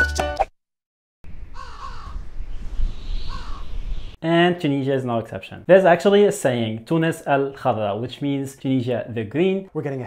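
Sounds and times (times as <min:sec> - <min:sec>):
wind-like hiss: 0:01.3 - 0:04.2
harsh bird caws: 0:01.5 - 0:02.3, 0:03.1 - 0:03.8.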